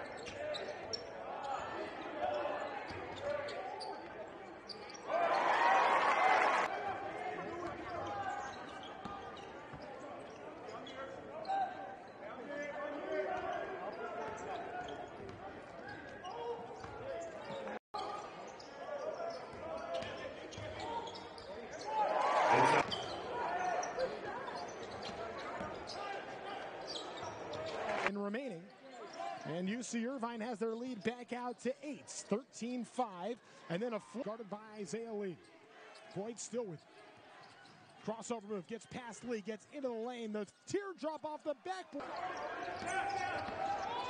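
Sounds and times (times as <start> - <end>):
crowd voices: 0.0 - 28.1.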